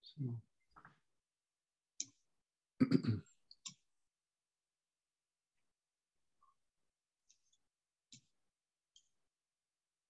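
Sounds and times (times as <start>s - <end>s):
person clearing throat: 2.8s - 3.3s.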